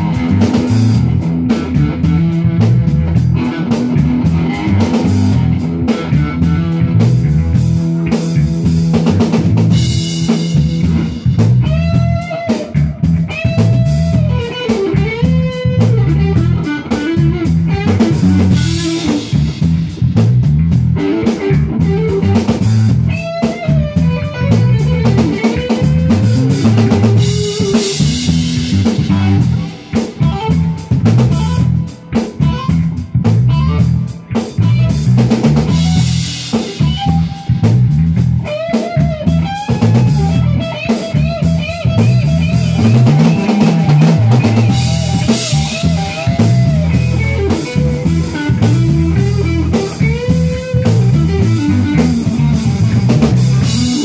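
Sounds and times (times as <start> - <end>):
bass guitar riff: 0.0 - 54.0
drum kit: 0.0 - 54.0
electric guitar with bent notes: 0.0 - 54.0.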